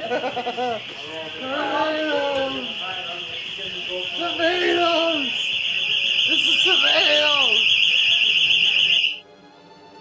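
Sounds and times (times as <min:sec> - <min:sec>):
warbling electronic alarm tone: 0:01.3 - 0:09.2.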